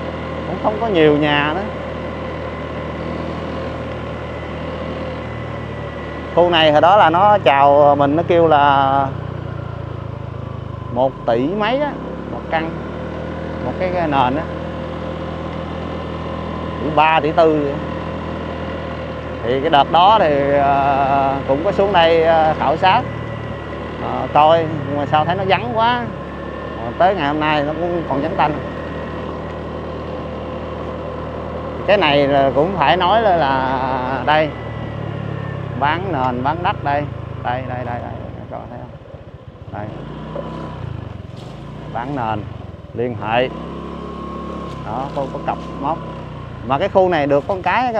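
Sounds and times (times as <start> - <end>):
motorbike engine running: 0.0 - 47.9
road noise: 0.0 - 47.9.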